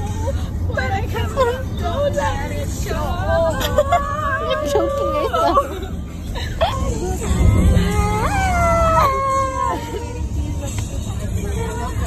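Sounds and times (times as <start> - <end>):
car cabin road rumble: 0.0 - 12.0
girl howling a long note: 7.8 - 9.8.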